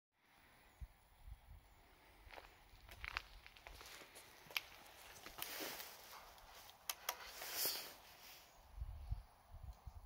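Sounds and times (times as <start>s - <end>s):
footsteps on concrete: 2.2s - 8.0s.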